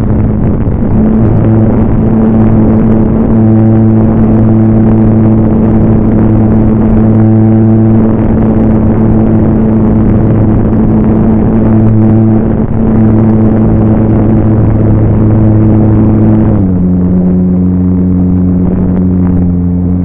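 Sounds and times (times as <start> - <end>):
model airplane motor humming: 0.0 - 20.0
wind rush on microphone: 0.0 - 20.0.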